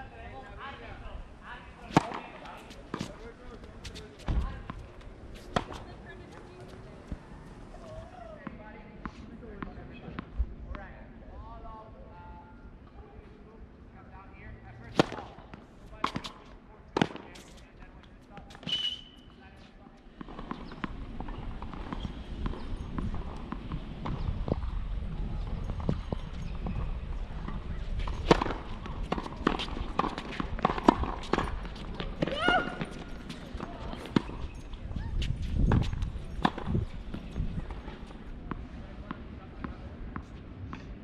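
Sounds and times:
tennis ball struck by racquets: 0:01.8 - 0:03.2, 0:05.4 - 0:05.9, 0:14.8 - 0:16.4, 0:17.0 - 0:17.5, 0:28.0 - 0:34.5, 0:35.7 - 0:37.8
tennis ball bouncing on hard court: 0:01.9 - 0:03.2, 0:05.4 - 0:07.2, 0:14.9 - 0:15.4, 0:16.0 - 0:16.4, 0:17.0 - 0:17.5, 0:20.2 - 0:24.7, 0:27.4 - 0:34.6, 0:35.6 - 0:40.8.

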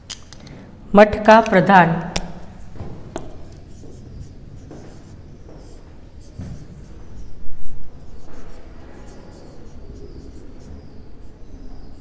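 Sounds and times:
marker squeaking on whiteboard: 0:02.5 - 0:12.0.

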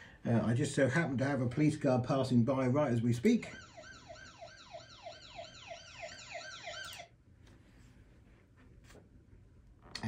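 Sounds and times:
police siren yelp: 0:03.4 - 0:07.1.

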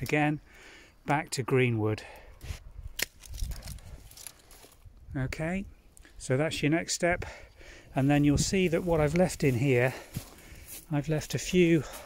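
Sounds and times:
stems rustling: 0:02.4 - 0:05.0, 0:08.0 - 0:12.0
secateurs snipping a stem: 0:02.9 - 0:04.4.

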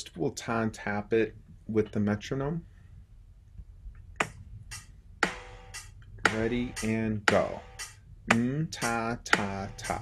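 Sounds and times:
metronome clicking: 0:04.2 - 0:10.0.

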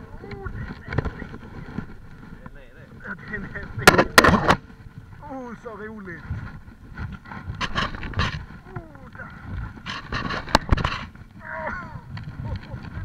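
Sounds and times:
gulls calling: 0:00.0 - 0:06.3
wind noise: 0:00.0 - 0:13.0.

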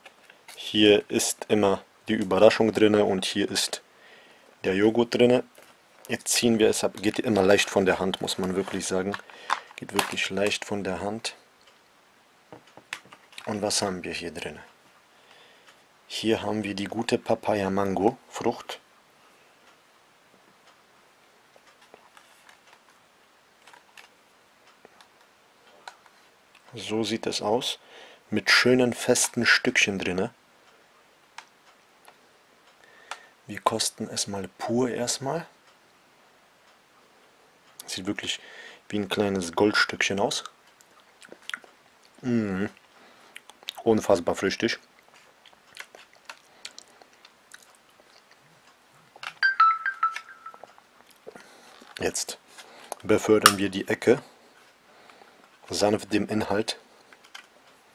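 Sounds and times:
mouth sounds of tasting: 0:41.2 - 0:43.8.

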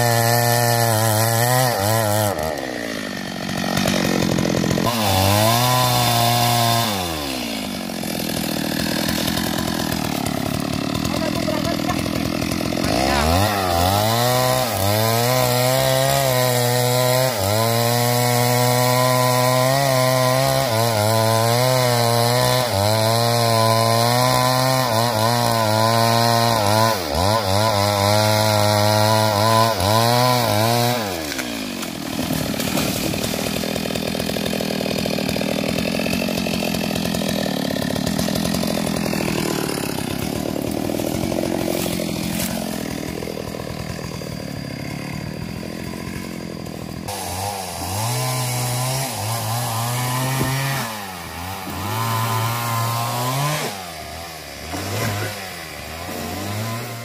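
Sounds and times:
chainsaw cutting and revving: 0:00.0 - 0:57.0.

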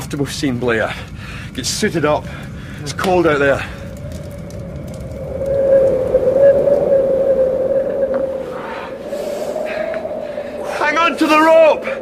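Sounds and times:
blizzard wind howling: 0:00.5 - 0:12.0.

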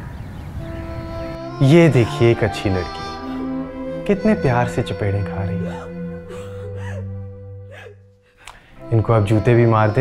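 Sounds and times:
background music low note: 0:00.6 - 0:10.0
woman sobbing: 0:05.4 - 0:08.1.

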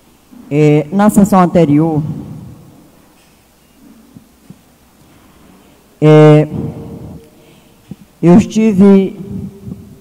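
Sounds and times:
sound system electrical hum: 0:00.0 - 0:10.0.

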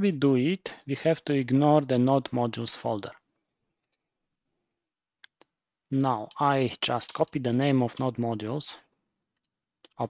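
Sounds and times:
person speaking: 0:00.0 - 0:03.3, 0:05.2 - 0:08.9
computer mouse clicks: 0:03.8 - 0:04.0.

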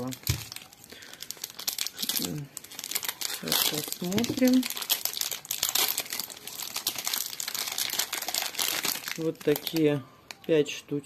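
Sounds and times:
plastic wrapping crinkling: 0:00.0 - 0:10.6.

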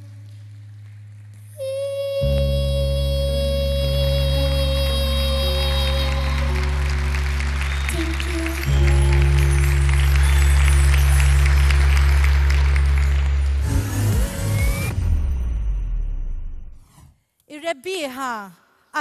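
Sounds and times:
pop ballad backing track: 0:01.7 - 0:12.1
audience applauding: 0:05.3 - 0:14.9.

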